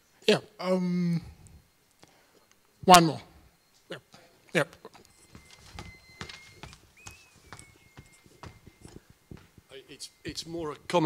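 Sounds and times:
faint high-pitched tone: 0:00.6 - 0:11.0
footsteps on a hard floor: 0:05.2 - 0:09.7.

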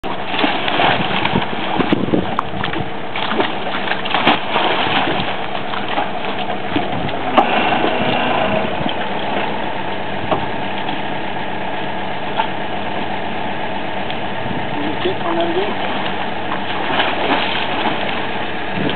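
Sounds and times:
drilling rig engine running: 0:00.0 - 0:18.9.

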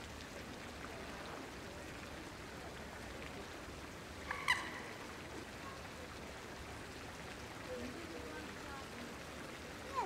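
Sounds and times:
fountain splashing into pond: 0:00.0 - 0:10.0.

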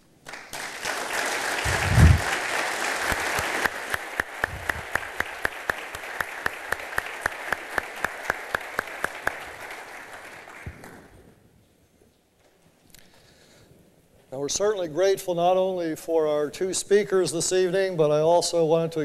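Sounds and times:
audience applauding: 0:00.0 - 0:11.2
person clapping steadily: 0:00.2 - 0:11.0.

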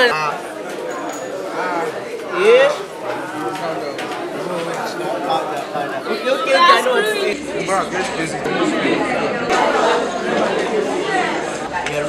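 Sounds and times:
several voices chattering: 0:00.0 - 0:12.0.

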